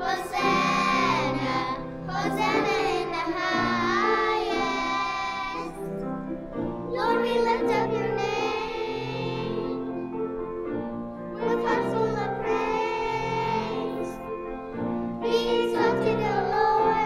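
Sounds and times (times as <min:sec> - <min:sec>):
young children singing: 0:00.0 - 0:06.0, 0:06.9 - 0:10.0, 0:11.4 - 0:14.5, 0:15.2 - 0:17.0.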